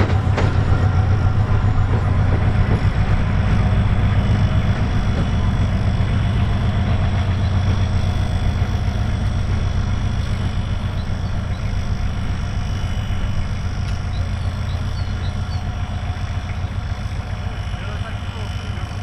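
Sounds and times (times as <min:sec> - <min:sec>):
diesel locomotive engine droning: 0:00.0 - 0:19.0.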